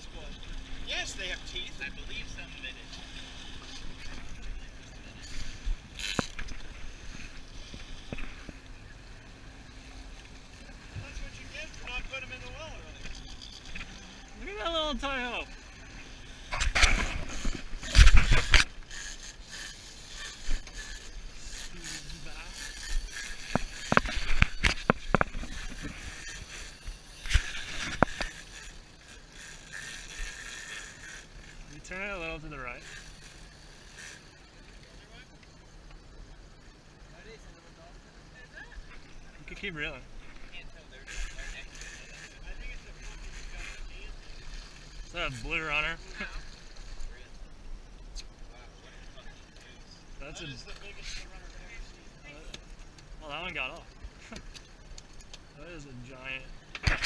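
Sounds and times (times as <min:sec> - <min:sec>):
water noise: 0:00.0 - 0:37.0
wind: 0:00.0 - 0:57.0.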